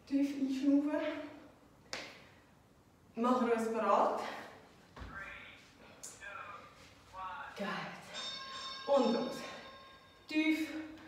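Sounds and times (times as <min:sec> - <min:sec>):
woman speaking: 0:00.0 - 0:01.4, 0:03.2 - 0:04.6, 0:07.6 - 0:08.1, 0:08.9 - 0:09.6, 0:10.3 - 0:11.0.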